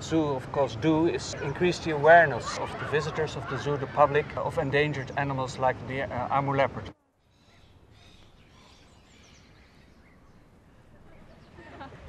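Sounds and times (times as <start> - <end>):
faint outdoor background noise: 0.0 - 12.0
distant bird chirps: 6.7 - 11.9.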